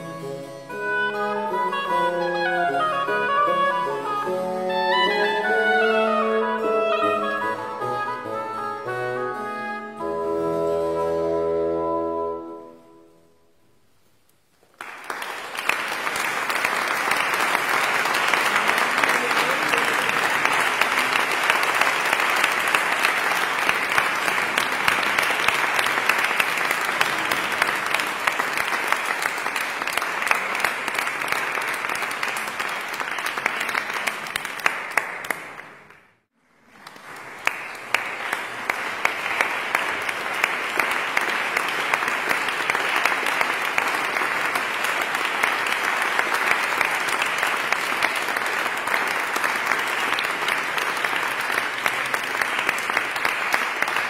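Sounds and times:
audience applauding: 0:14.6 - 0:54.0.

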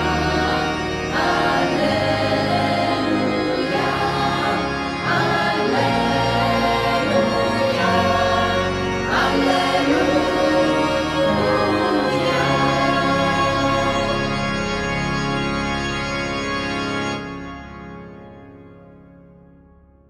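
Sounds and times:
choir singing a hymn: 0:00.0 - 0:14.8
instrumental accompaniment: 0:00.0 - 0:19.6.

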